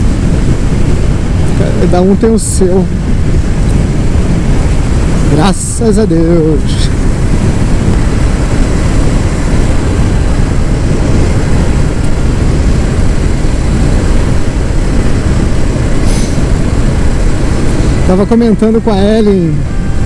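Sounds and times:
motorcycle road noise: 0.0s - 20.0s
wind rush on microphone: 0.0s - 20.0s.

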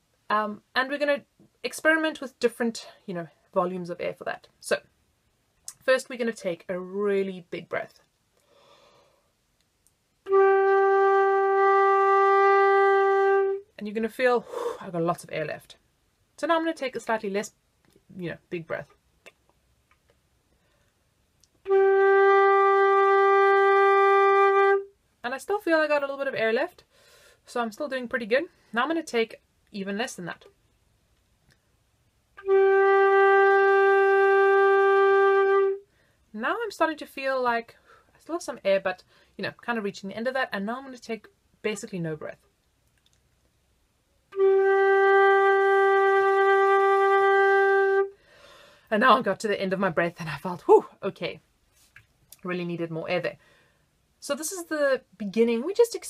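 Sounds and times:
soft breathy sound: 8.4s - 9.4s, 14.4s - 14.9s, 48.1s - 48.9s, 53.4s - 54.0s
flute sustained note: 10.3s - 13.6s, 21.6s - 24.9s, 32.4s - 35.8s, 44.3s - 48.2s.

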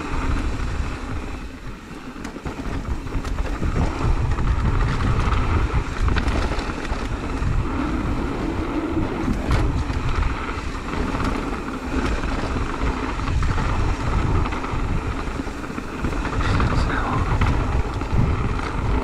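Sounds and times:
bike clicks and rattles: 0.0s - 19.0s
bike tyres on dirt: 0.0s - 19.0s
wind buffeting microphone: 0.0s - 19.0s.

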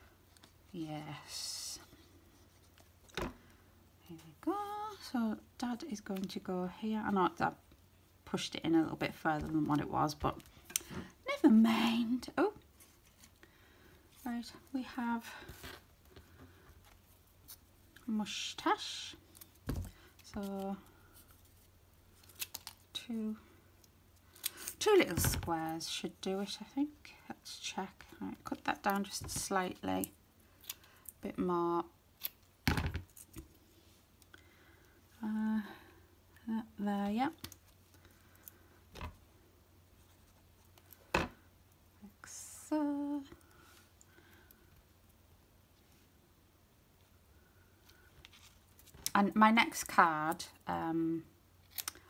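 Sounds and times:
low steady hum: 0.0s - 52.0s.

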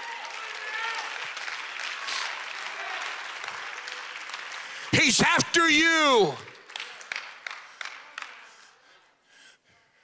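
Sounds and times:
congregation clapping: 0.0s - 8.8s.

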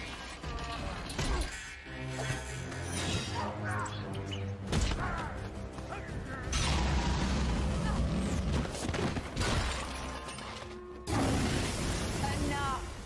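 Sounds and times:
action film music: 0.0s - 12.9s.

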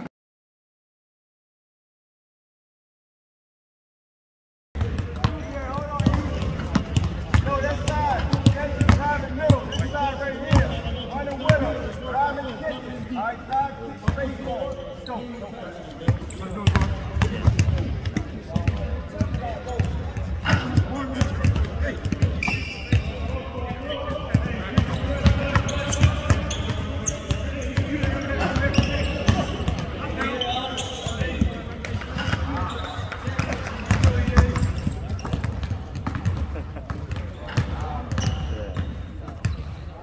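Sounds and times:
basketballs bouncing on hardwood: 4.8s - 9.0s, 31.1s - 39.6s.

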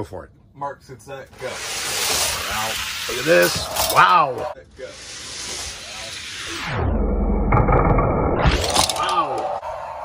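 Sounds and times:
toy cars rolling on plastic track: 1.6s - 4.2s, 8.6s - 9.2s.

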